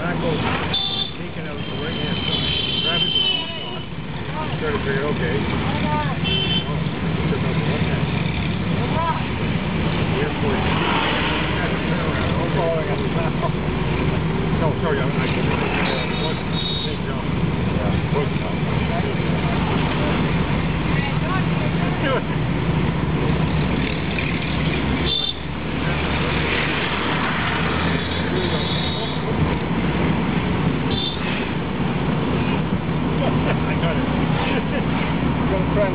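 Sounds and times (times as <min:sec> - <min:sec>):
car engine and road noise: 0:00.0 - 0:35.9.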